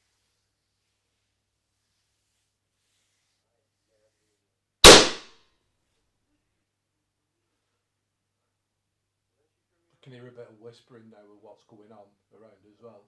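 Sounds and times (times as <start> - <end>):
sharp loud bang: 4.8 - 5.3.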